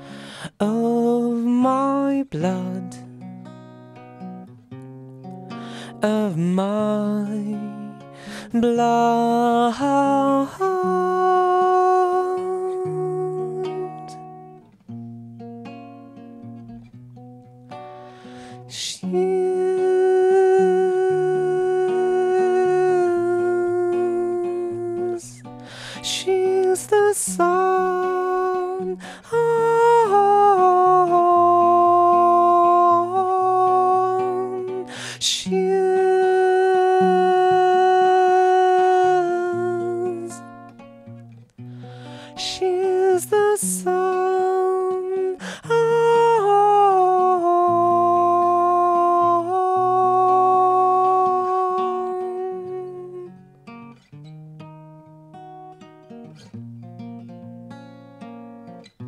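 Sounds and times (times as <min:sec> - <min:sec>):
acoustic guitar: 0:00.0 - 0:59.0
man humming a melody: 0:08.4 - 0:14.5, 0:18.6 - 0:40.8, 0:42.3 - 0:53.4
man singing long note: 0:42.5 - 0:53.2.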